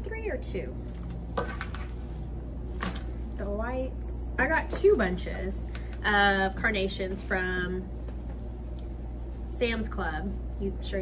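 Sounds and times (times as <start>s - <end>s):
steady low room hum: 0.0s - 11.0s.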